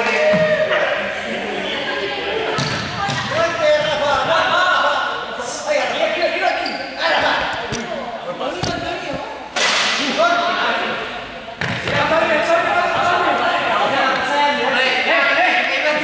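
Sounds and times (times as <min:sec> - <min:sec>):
players' voices and shouts echoing: 0:00.0 - 0:16.0.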